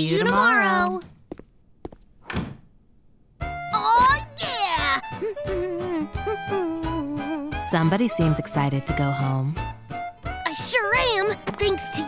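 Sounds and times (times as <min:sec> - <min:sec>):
door shutting thunk: 0:02.2 - 0:02.7.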